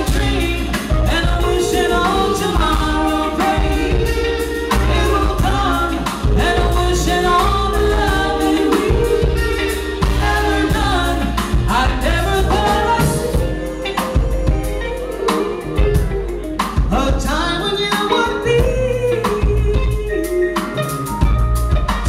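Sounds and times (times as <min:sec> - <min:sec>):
band with bass and drums: 0:00.0 - 0:22.0
woman singing soul melody: 0:00.0 - 0:22.0.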